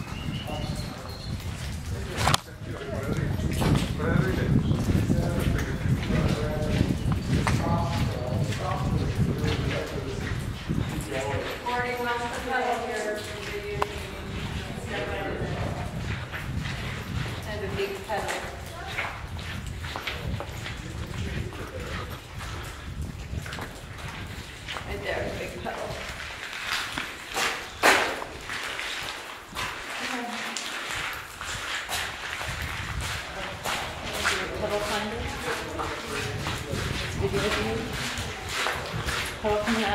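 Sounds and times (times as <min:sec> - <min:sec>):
indistinct voices talking: 0:00.0 - 0:22.8, 0:24.6 - 0:26.2
footsteps on hard rock floor: 0:00.0 - 0:39.9.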